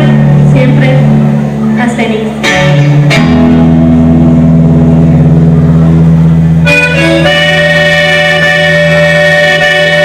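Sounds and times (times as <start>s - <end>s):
live band music with bass guitar: 0.0s - 10.0s.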